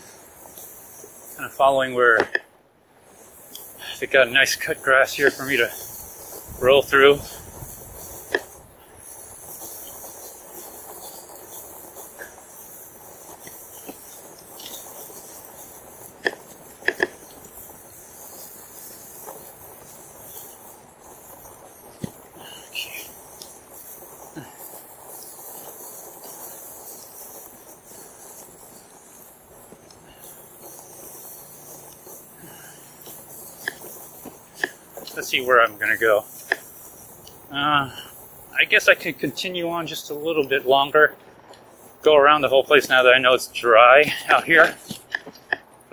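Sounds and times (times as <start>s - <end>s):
bike tyres rolling over grass: 0.0s - 45.9s
sharp clicks and rattles: 0.2s - 45.9s.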